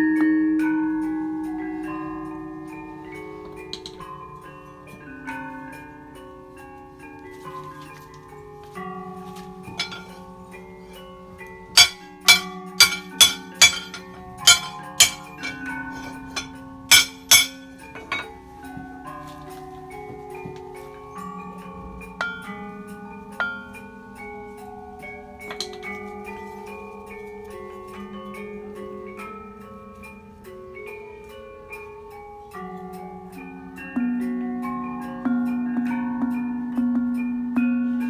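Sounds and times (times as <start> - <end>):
metallophone music: 0.0 - 38.0
sharp metallic strikes: 9.8 - 10.2, 11.8 - 18.3.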